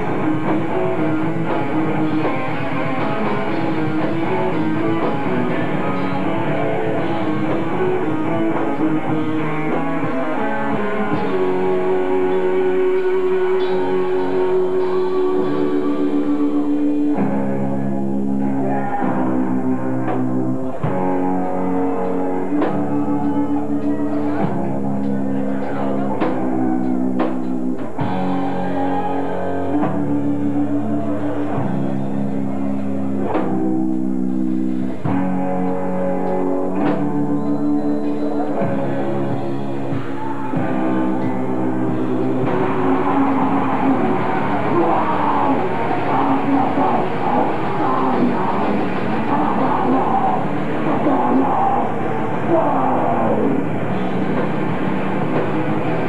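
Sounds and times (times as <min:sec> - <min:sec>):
guitar and bass chords: 0:00.0 - 0:56.0
live metal band playing: 0:00.0 - 0:56.0.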